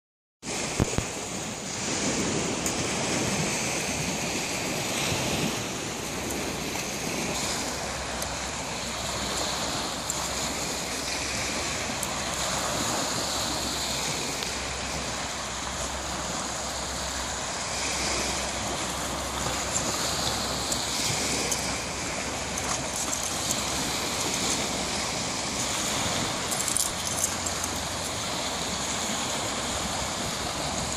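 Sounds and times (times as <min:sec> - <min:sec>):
small waves breaking on beach: 0:00.4 - 0:30.9
wind on microphone: 0:00.4 - 0:30.9.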